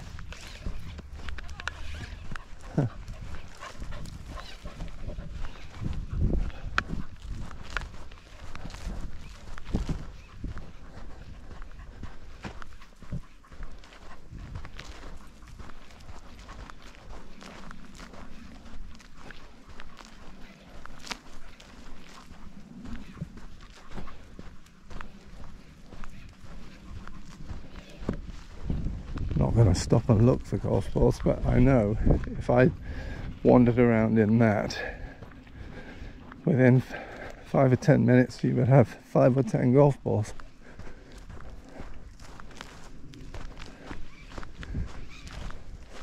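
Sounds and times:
footsteps on dry grass: 0.0 - 46.0.

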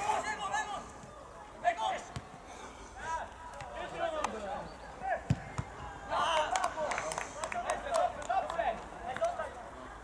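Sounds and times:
football kick thud: 5.3 - 5.7.

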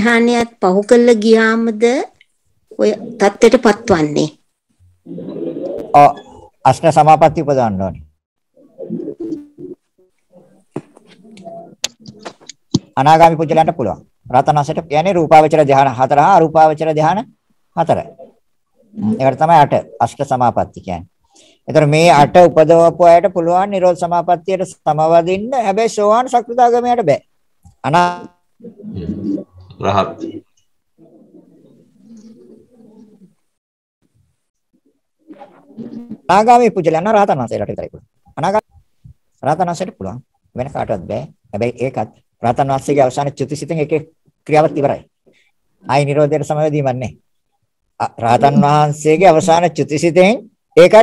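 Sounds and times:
bird cooing: 5.1 - 6.5, 8.6 - 12.3, 28.6 - 33.5, 35.3 - 36.3.

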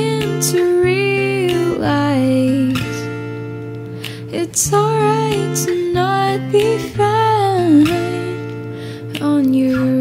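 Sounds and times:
person singing: 0.0 - 3.1, 4.2 - 10.0
acoustic guitar: 0.0 - 10.0.

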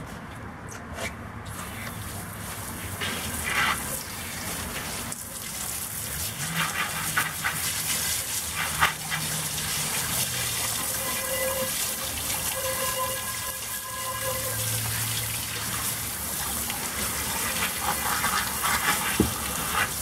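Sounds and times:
hose spraying water into pot: 1.5 - 20.0
water splashing on plastic tarp: 1.6 - 20.0.

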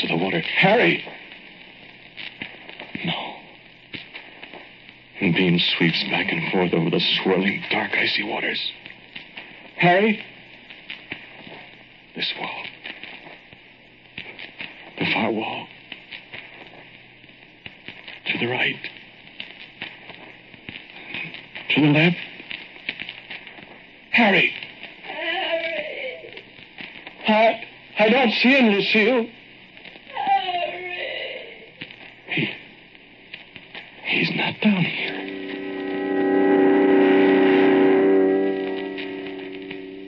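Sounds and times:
record clicks and crackles: 0.0 - 30.2, 31.7 - 40.0
record hiss: 0.0 - 40.0.

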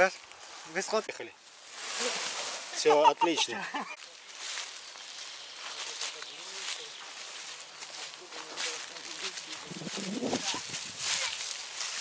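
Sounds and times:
footsteps through tall grass: 0.0 - 12.0.

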